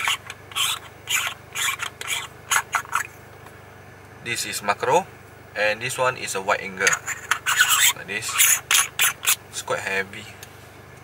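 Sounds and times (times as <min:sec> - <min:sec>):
threaded lens rings scraping: 0:00.0 - 0:03.2, 0:06.8 - 0:09.4.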